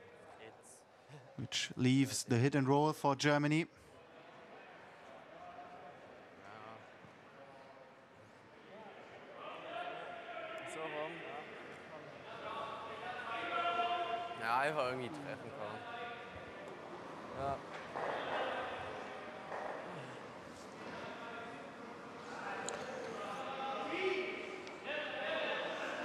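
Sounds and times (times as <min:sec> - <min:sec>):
distant indistinct voices: 0:04.0 - 0:26.0.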